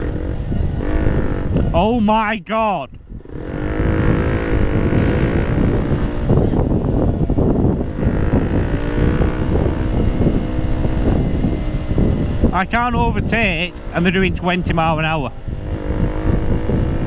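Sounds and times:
motorcycle engine running: 0.0 - 2.2, 3.0 - 17.0
wind buffeting microphone: 0.0 - 17.0.

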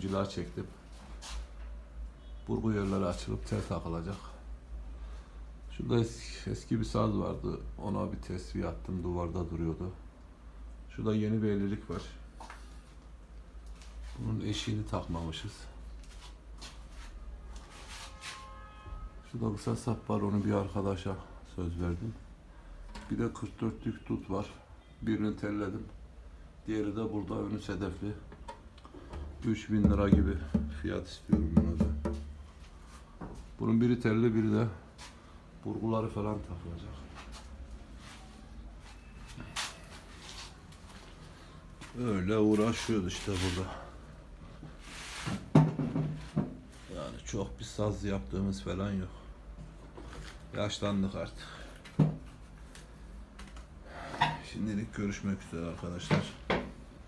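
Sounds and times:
phone rustling and brushing: 16.1 - 18.6, 42.4 - 43.8, 44.7 - 45.5
rubbing noise: 16.1 - 18.6, 42.5 - 43.7
sharp knocks on wood: 29.9 - 32.3.

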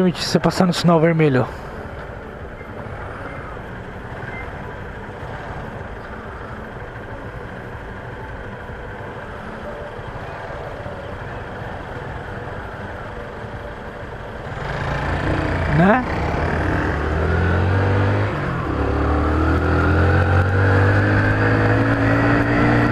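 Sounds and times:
street traffic noise: 0.0 - 22.9.

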